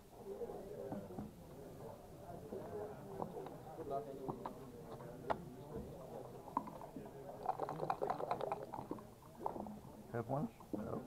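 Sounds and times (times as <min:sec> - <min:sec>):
voices talking in background: 0:00.0 - 0:11.0
dice rattling in a cup: 0:07.4 - 0:09.0.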